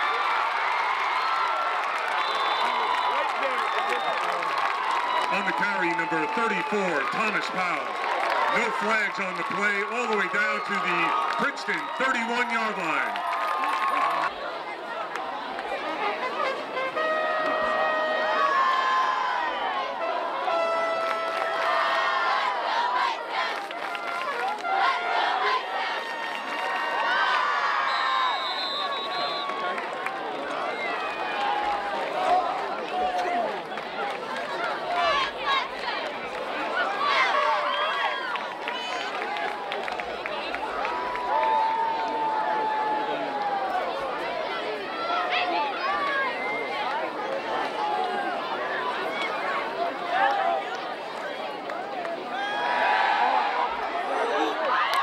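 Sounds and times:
crowd shouting and chattering: 0.0 - 55.0.

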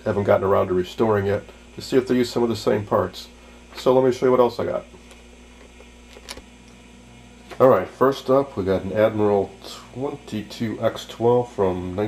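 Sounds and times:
camcorder handling hum: 4.9 - 6.8.

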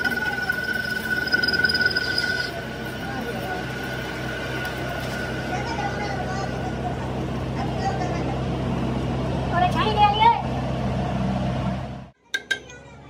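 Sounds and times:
metal lathe cutting: 0.0 - 6.3
thin high tone: 0.0 - 7.2.

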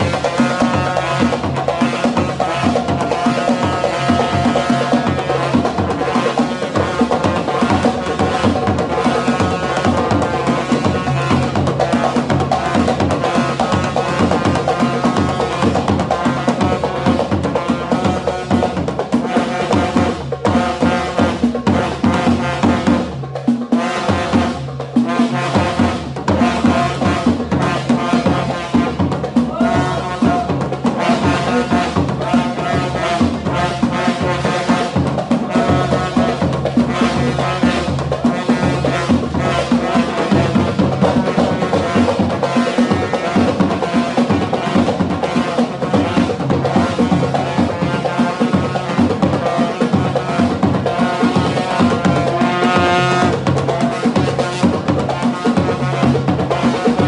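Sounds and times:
drums and hand percussion: 0.0 - 57.0
men chanting in unison: 29.4 - 30.7.

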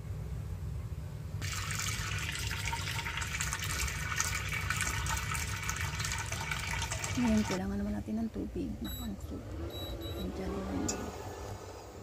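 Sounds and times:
steady low hum: 0.0 - 12.0
tap water running into metal pot: 1.4 - 7.6.

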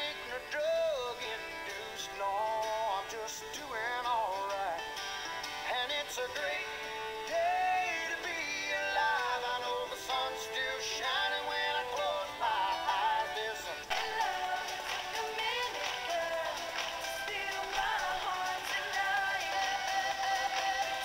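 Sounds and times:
pop song with lead vocal: 0.0 - 21.0.

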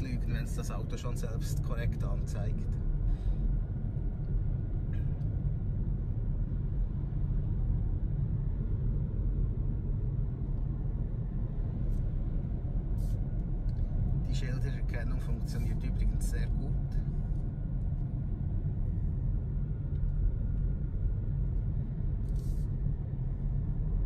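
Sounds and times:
road and tyre rumble: 0.0 - 24.0.

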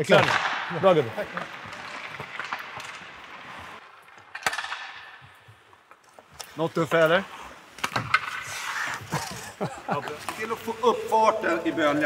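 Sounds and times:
hockey sticks and pucks on ice: 0.0 - 12.0.

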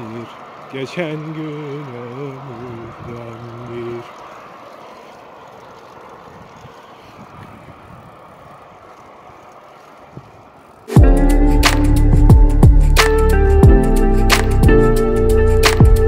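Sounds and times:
road noise: 0.0 - 16.0
wind rushing: 2.6 - 16.0.

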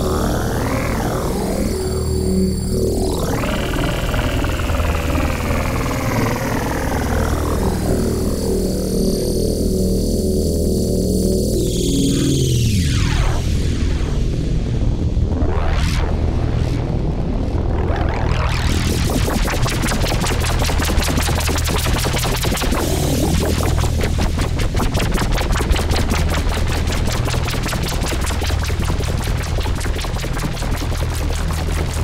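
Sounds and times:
synthesizer drone with filter sweeps: 0.0 - 32.0.

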